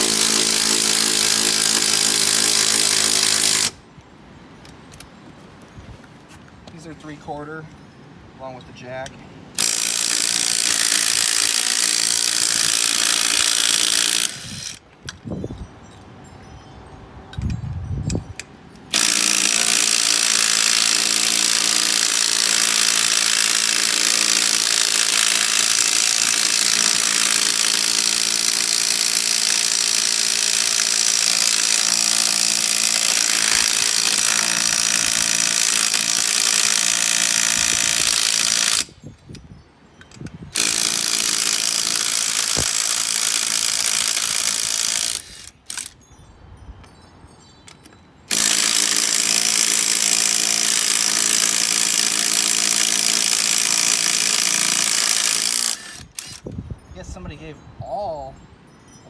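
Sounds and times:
impact wrench hammering: 19.0s - 38.9s.

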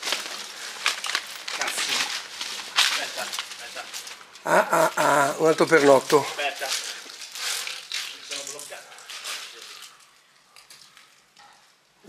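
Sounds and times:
light crackling: 0.0s - 12.0s.

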